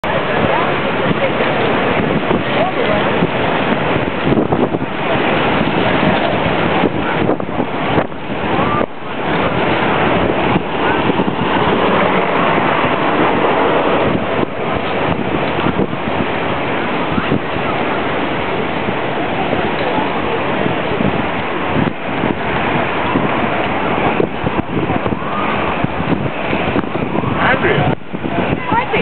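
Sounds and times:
skate wheels rolling on asphalt: 0:00.0 - 0:29.0
wind rushing on microphone: 0:00.0 - 0:29.0.

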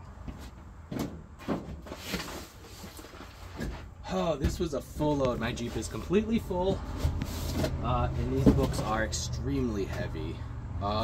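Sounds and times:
box knocks and bumps: 0:00.9 - 0:05.0, 0:07.1 - 0:08.9
cardboard rustle: 0:01.4 - 0:04.0.

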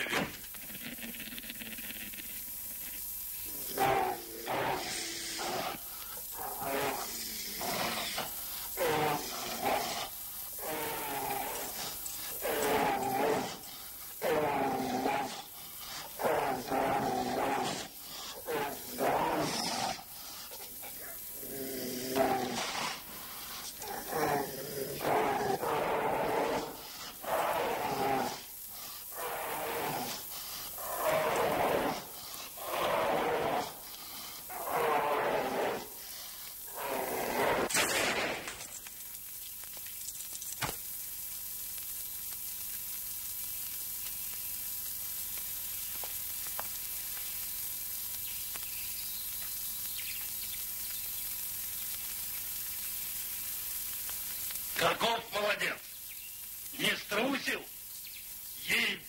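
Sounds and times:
bear roaring: 0:00.0 - 0:38.4.

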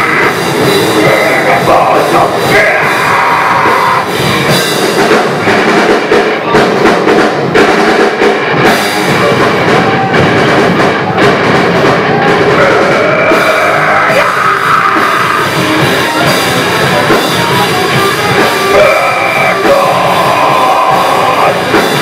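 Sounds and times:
bass guitar: 0:00.0 - 0:22.0
drum kit: 0:00.0 - 0:22.0
electric guitar: 0:00.0 - 0:22.0.

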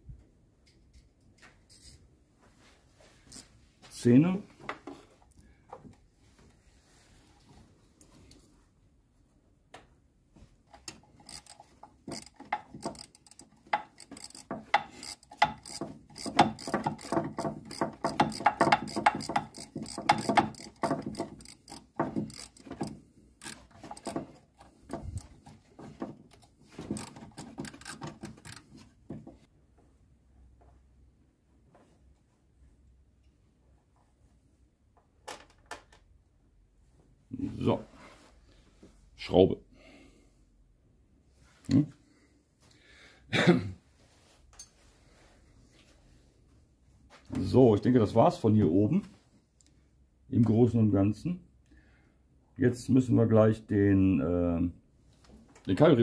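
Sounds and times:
socket ratchet clicking: 0:10.8 - 0:25.7, 0:26.3 - 0:28.7.

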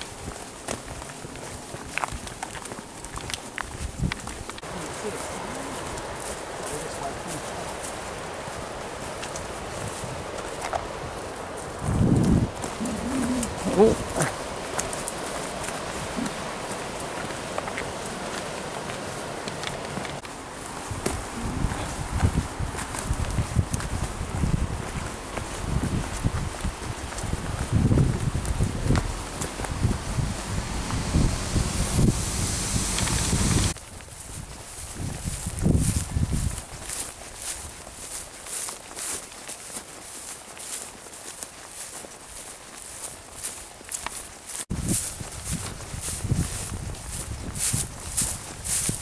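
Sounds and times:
footsteps on earth path: 0:00.0 - 0:49.0.

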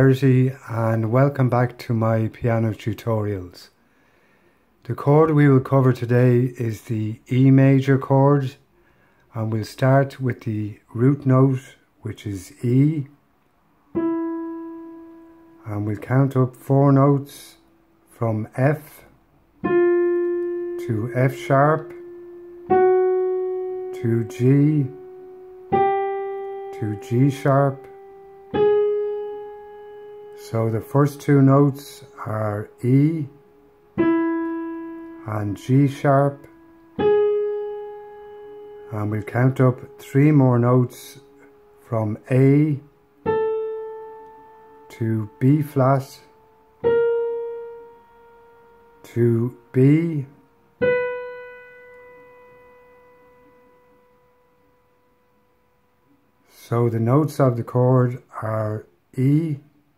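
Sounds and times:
digital piano note: 0:13.9 - 0:17.2, 0:18.9 - 0:57.6.

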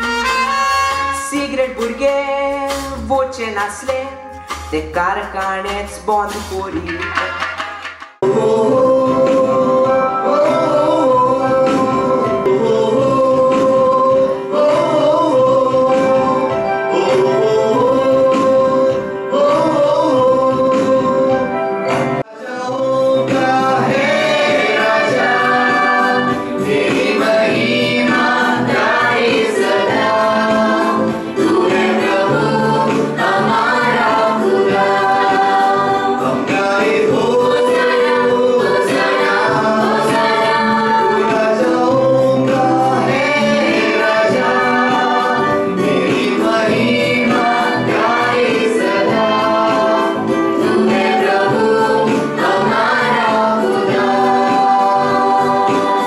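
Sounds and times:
men singing in harmony: 0:08.2 - 0:21.5, 0:22.2 - 0:56.0.

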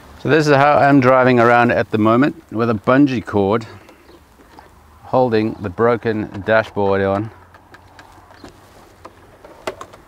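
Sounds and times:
hands tapping plastic dashboard: 0:06.0 - 0:10.0.

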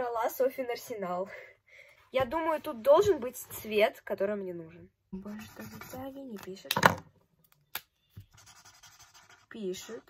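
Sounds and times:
marker scratching on paper: 0:05.2 - 0:06.3, 0:08.2 - 0:10.0.

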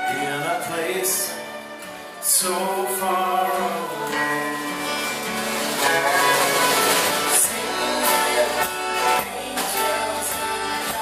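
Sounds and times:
country-folk band playing: 0:00.0 - 0:11.0
person singing: 0:00.0 - 0:11.0.

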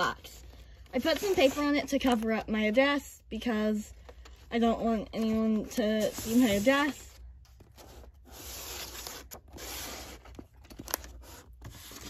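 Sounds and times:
paper and cardboard rubbing: 0:05.2 - 0:07.1, 0:07.7 - 0:10.4.

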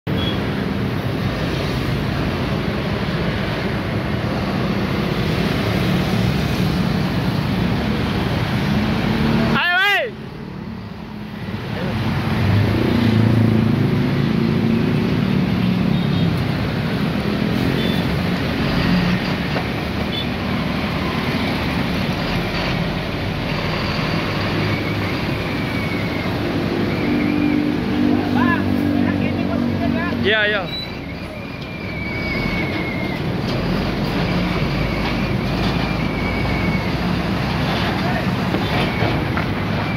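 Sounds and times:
tyre and road noise: 0:00.1 - 0:39.9
diesel truck engines running: 0:00.2 - 0:39.9.

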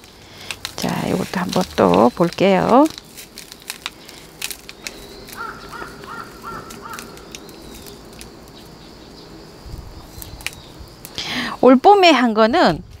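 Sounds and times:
potting mix crumbling by hand: 0:00.0 - 0:11.3
bird calling: 0:03.4 - 0:11.4.

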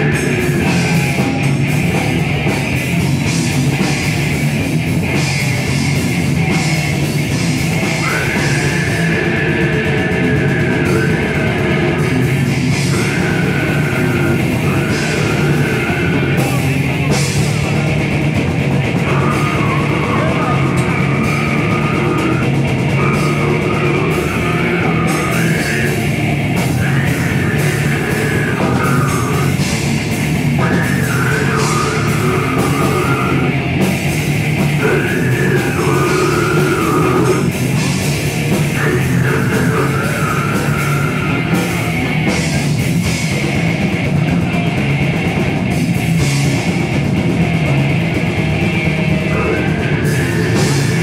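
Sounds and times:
bass guitar: 0:00.0 - 0:51.0
death metal band playing live: 0:00.0 - 0:51.0
distorted electric guitars: 0:00.0 - 0:51.0
drum kit: 0:00.0 - 0:51.0
growled vocals: 0:00.0 - 0:51.0.

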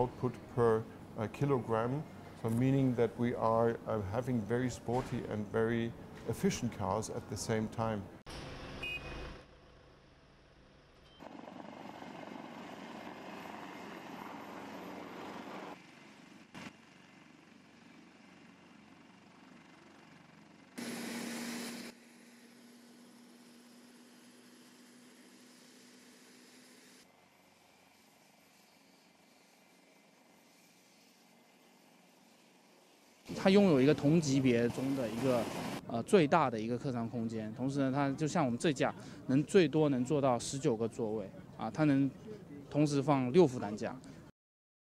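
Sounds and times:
helicopter rotors humming: 0:10.8 - 0:20.8, 0:27.2 - 0:35.8.

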